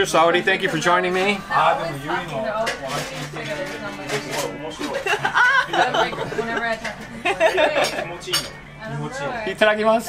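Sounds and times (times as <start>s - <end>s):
ceramic plates clinking: 2.6s - 8.7s.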